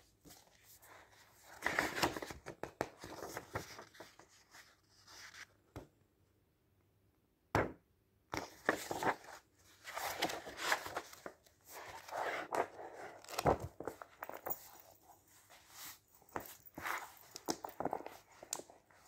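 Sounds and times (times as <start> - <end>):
magazine pages rustling: 0.2 - 5.6, 8.4 - 19.0.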